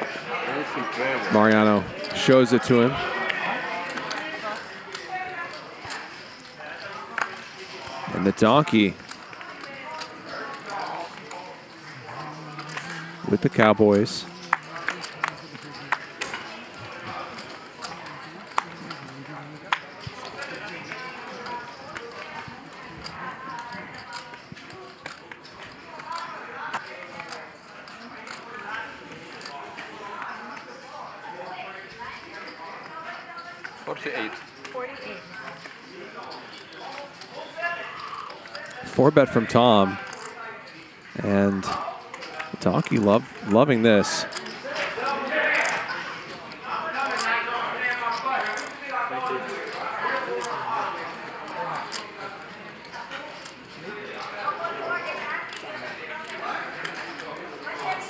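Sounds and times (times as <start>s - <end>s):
low background chatter: 0.0s - 58.0s
murmured conversation: 0.0s - 58.0s
poker chips clicking: 8.6s - 19.0s.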